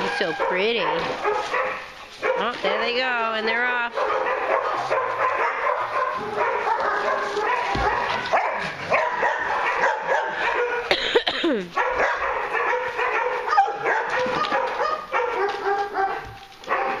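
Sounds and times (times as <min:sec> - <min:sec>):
dogs barking and yipping: 0:00.0 - 0:11.1, 0:11.7 - 0:17.0
dog yelp falling in pitch: 0:11.8 - 0:17.0.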